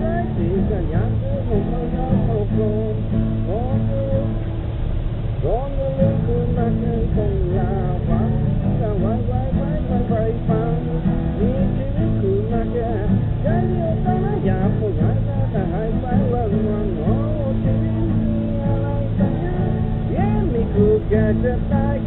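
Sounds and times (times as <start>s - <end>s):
man singing: 0.0s - 4.5s, 5.4s - 22.0s
strummed acoustic guitar: 0.0s - 22.0s.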